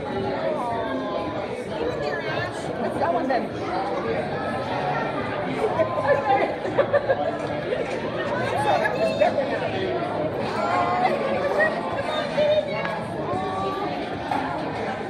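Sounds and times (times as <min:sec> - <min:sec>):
diners' chatter: 0:00.0 - 0:15.0.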